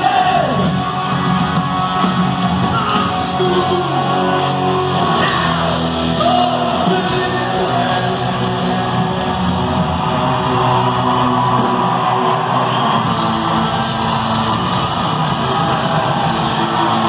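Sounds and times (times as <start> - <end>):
distorted electric guitars: 0.0 - 17.0
rock band playing live: 0.0 - 17.0.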